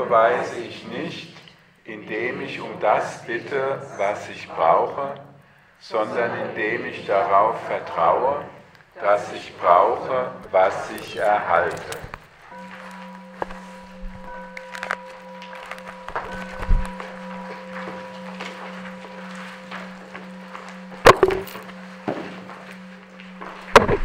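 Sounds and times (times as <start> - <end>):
steady low drone tone: 12.5 - 24.0
scattered clicks and knocks: 19.7 - 24.0.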